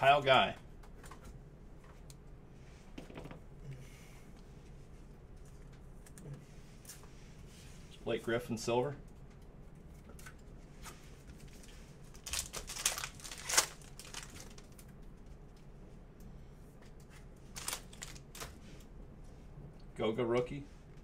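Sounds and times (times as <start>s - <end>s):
trading cards rustling: 11.3s - 14.8s, 17.5s - 18.6s.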